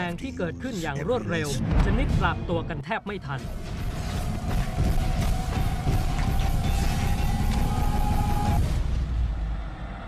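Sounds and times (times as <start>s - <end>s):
dramatic trailer music with drums: 1.6s - 10.0s.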